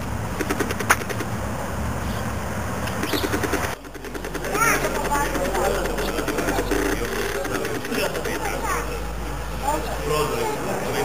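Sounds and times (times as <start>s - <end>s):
birds chirping: 0.0s - 11.0s
steady low rumble: 0.0s - 11.0s
sharp click: 0.4s - 1.3s.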